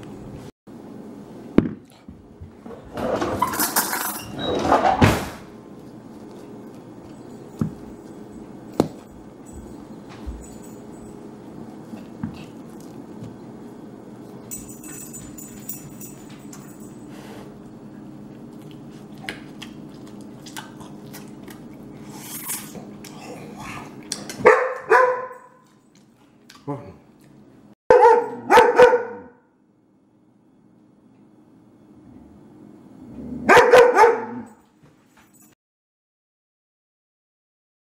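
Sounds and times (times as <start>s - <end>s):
dog barking: 24.4s - 25.6s, 27.9s - 29.4s, 33.4s - 34.6s.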